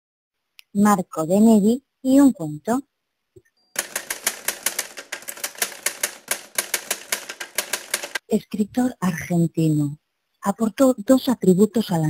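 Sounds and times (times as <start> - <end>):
typewriter key clacks: 3.8 - 8.2.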